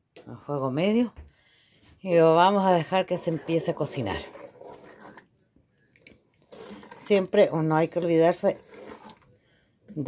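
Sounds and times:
wooden spoon stirring jam: 0:02.0 - 0:10.0.

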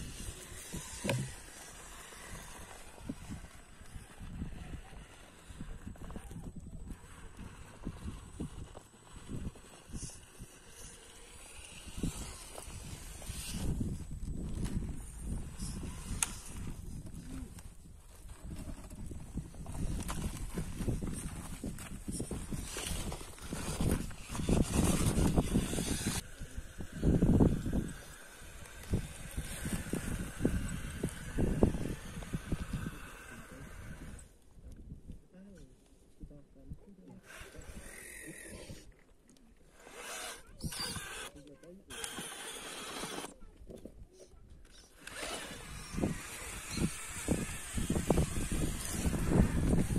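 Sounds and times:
toy crawler knocking and scraping on rock: 0:00.0 - 0:34.3, 0:39.7 - 0:49.9.

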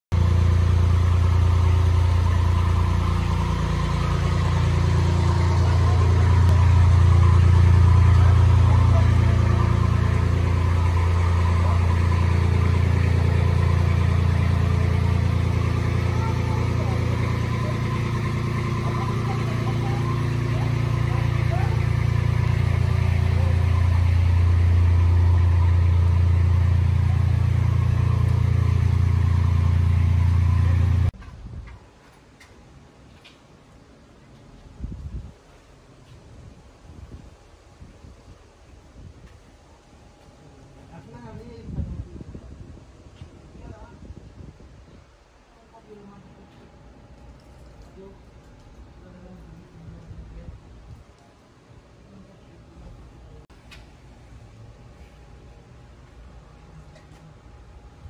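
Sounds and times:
car engine idling: 0:00.0 - 0:31.2.

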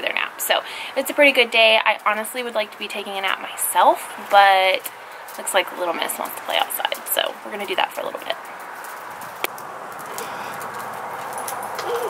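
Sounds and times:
tricycle rolling on concrete: 0:00.0 - 0:12.0.

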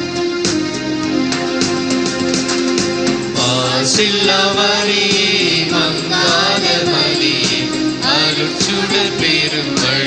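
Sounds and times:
hymn singing with instruments: 0:03.2 - 0:10.0.

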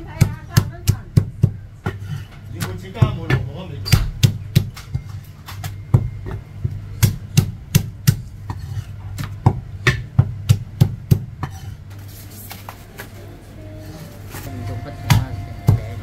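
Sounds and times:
low hum: 0:13.5 - 0:16.0.

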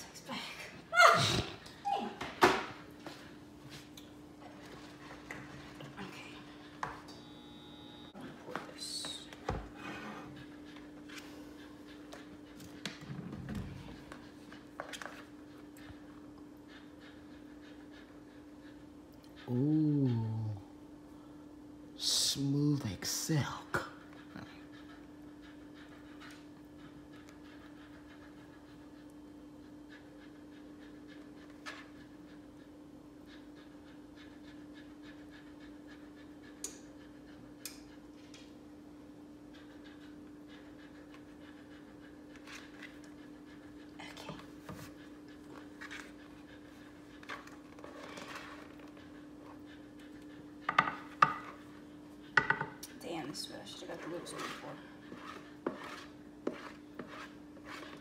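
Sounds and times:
utensil knocking on bowl: 0:52.4 - 0:52.8
spatula scraping a bowl: 0:53.8 - 0:58.0.

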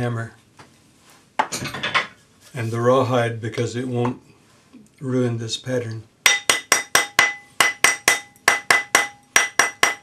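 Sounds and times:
hammer striking ring on mandrel: 0:06.2 - 0:10.0.

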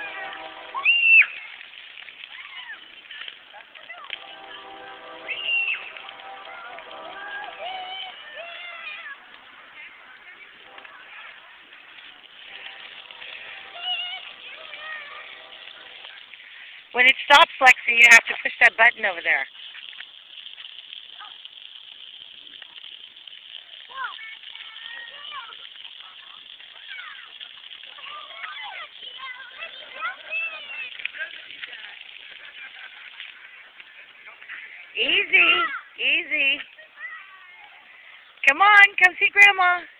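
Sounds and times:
distant children calling out: 0:00.0 - 0:16.3
water jets hissing: 0:00.0 - 0:39.9.

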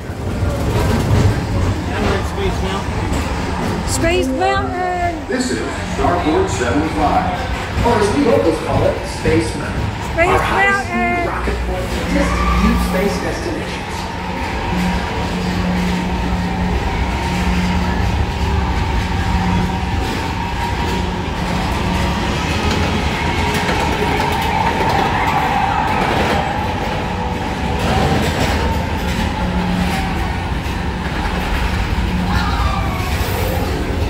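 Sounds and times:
ride car rumbling along track: 0:00.0 - 0:34.0
low motor hum: 0:09.2 - 0:25.7.

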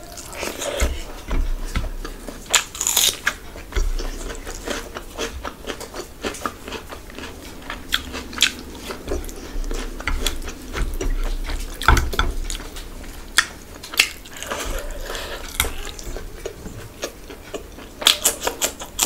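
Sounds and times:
chewing and biting food: 0:00.0 - 0:19.0.

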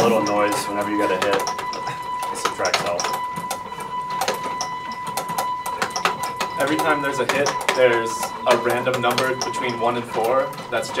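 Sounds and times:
toy robots clicking and clacking: 0:00.0 - 0:11.0.

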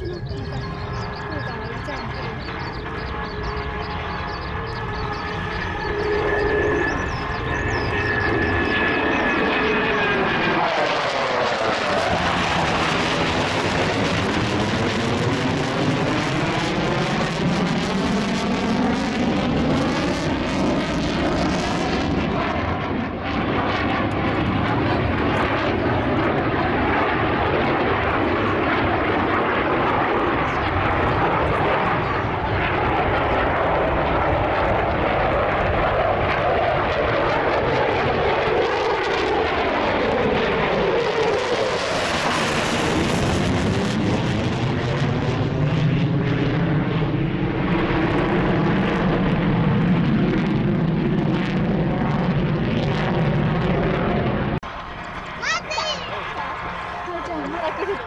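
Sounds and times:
fighter jet engines roaring overhead: 0:00.0 - 0:58.0.

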